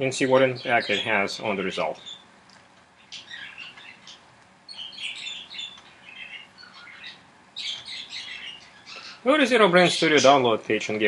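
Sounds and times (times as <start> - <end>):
bird chirping: 0.0 - 10.5.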